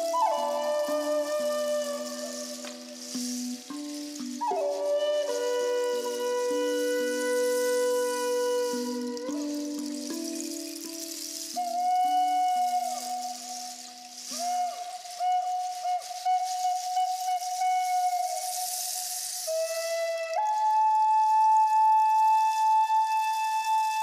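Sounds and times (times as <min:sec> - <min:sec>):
wooden flute melody: 0:00.0 - 0:24.0.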